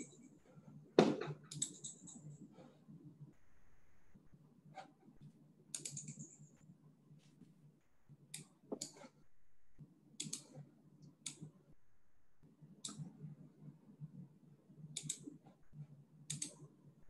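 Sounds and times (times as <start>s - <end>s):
faint low hum: 0.0s - 17.0s
computer mouse clicks: 1.5s - 2.4s, 5.7s - 6.5s, 8.3s - 9.2s, 10.2s - 11.5s, 12.8s - 13.1s, 14.9s - 15.4s, 16.3s - 16.6s.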